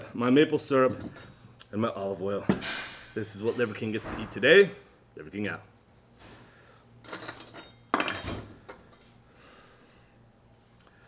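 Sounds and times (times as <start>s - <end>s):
dishes and cutlery clinking: 7.0s - 9.0s.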